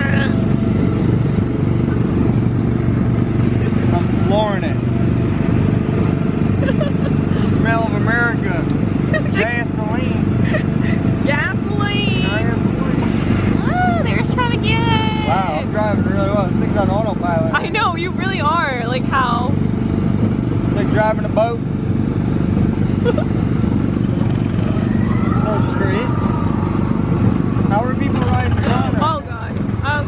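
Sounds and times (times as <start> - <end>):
voices: 0.0 - 2.2, 6.6 - 19.6, 24.1 - 30.0
small gasoline engine running: 0.0 - 5.3, 12.2 - 26.1, 27.7 - 30.0.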